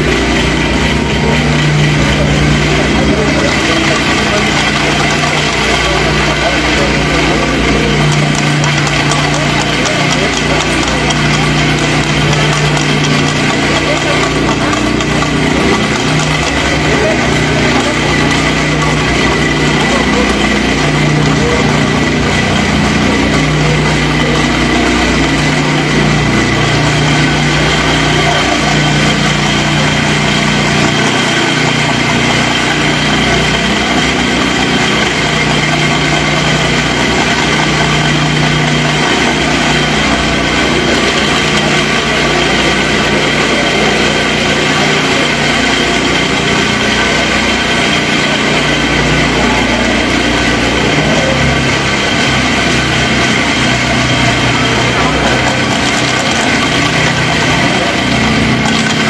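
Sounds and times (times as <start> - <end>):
small engine running: 0.0 - 59.0.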